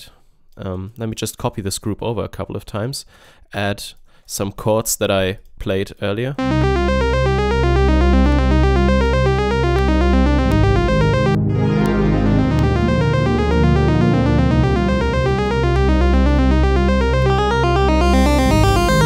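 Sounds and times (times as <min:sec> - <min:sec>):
synthesizer arpeggio over chords: 0:06.4 - 0:19.0.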